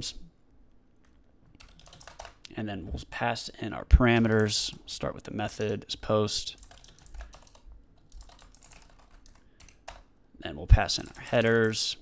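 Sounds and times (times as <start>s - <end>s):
computer keyboard typing: 1.0s - 2.4s, 6.6s - 10.1s, 10.9s - 11.9s.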